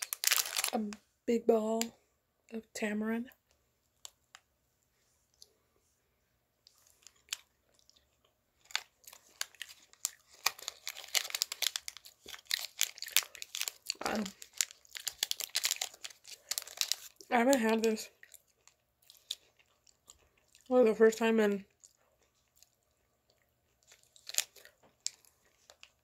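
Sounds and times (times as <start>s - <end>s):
plastic wrapper crinkling: 0.0s - 1.0s, 6.7s - 19.6s, 23.8s - 26.0s.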